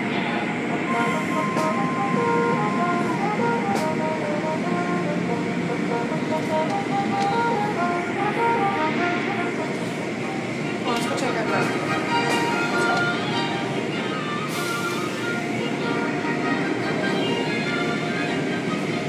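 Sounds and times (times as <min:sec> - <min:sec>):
music tune: 0:00.9 - 0:10.4.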